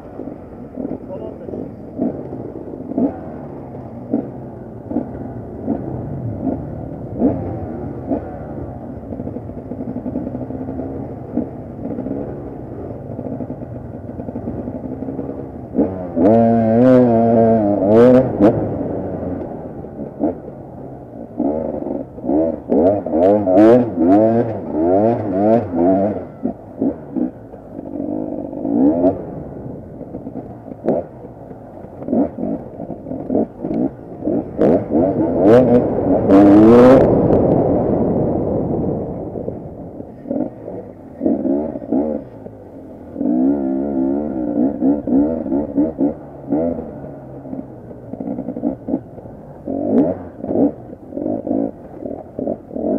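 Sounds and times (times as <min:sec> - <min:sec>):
motorcycle engine revving: 0:00.0 - 0:52.9.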